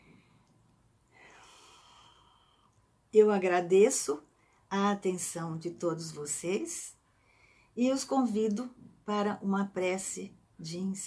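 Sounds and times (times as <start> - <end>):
woman breathing faintly: 0.0 - 2.8, 7.0 - 7.8.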